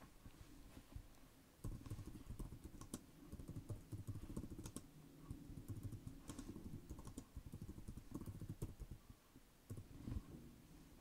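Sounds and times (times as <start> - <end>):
computer keyboard typing: 1.6 - 9.0, 9.7 - 9.9.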